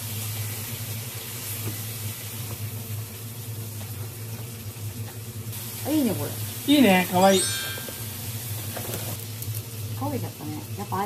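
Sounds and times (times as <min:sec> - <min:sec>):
meat sizzling in a frying pan: 0:00.0 - 0:11.0.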